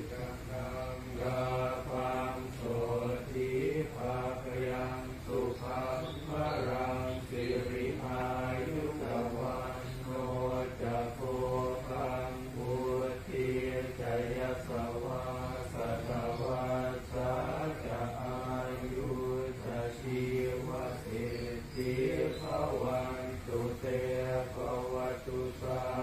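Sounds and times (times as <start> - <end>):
man chanting prayers: 0.0 - 26.0.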